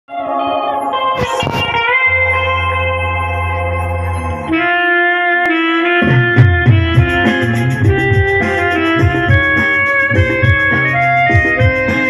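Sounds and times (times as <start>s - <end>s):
deep steady bass note: 6.0s - 12.0s.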